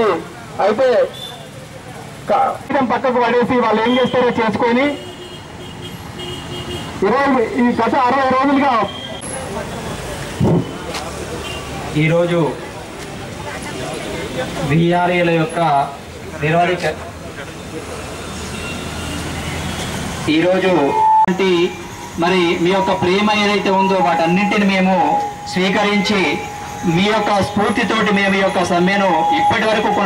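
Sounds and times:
faint road traffic: 0.0s - 30.0s
man speaking: 20.3s - 30.0s
faint intermittent steady tone: 20.6s - 30.0s.

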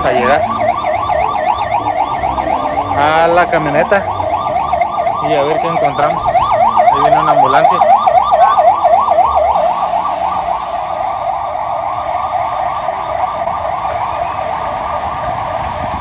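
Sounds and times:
ambulance siren yelping: 0.0s - 16.0s.

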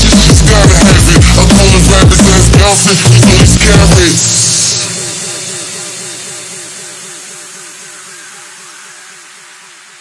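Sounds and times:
high hiss: 4.1s - 10.0s.

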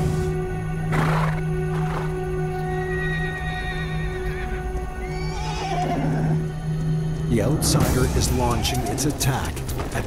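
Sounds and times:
low drone of background music: 0.0s - 10.0s
horse whinnying: 0.9s - 6.5s, 8.5s - 9.0s.

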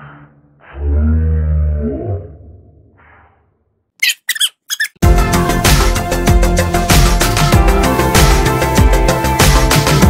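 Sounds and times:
sped-up squeaky male voice: 4.0s - 5.0s.

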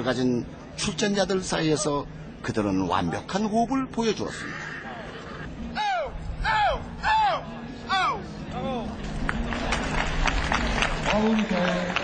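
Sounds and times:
man shouting high-pitched calls: 5.7s - 8.8s
crowd applause: 9.0s - 12.0s.

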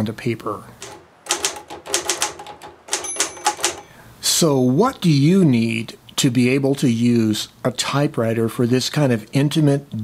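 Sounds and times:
typewriter keys clacking: 0.8s - 4.0s.

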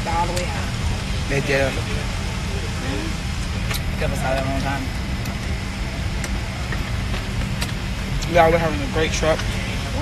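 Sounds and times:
airliner cabin rumble: 0.0s - 10.0s.

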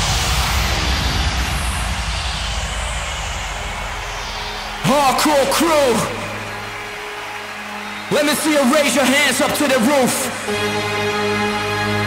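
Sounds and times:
hissing noise sweep: 0.0s - 5.5s.

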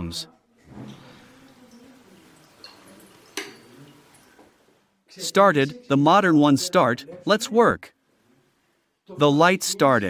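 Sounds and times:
water trickling into metal funnel: 0.7s - 4.7s.

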